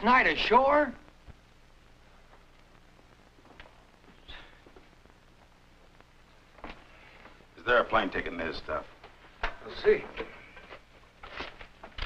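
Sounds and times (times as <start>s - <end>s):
steady low hum: 0.0s - 12.0s
papers rustling on desk: 10.2s - 12.0s.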